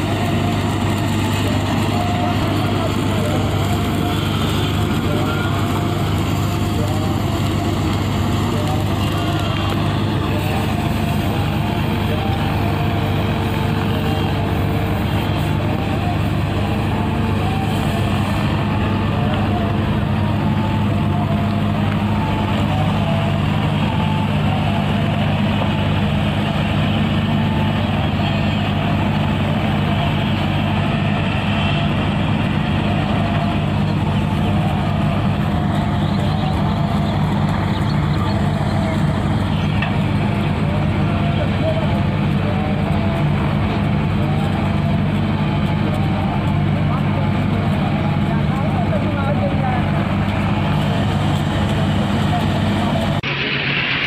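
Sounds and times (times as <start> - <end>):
construction machinery engine drone: 0.0 - 54.0
faint voices: 0.0 - 54.0.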